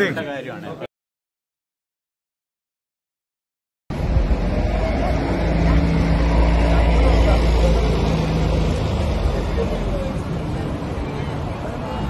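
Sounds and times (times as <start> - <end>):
vehicle engine passing by: 3.9 - 12.0.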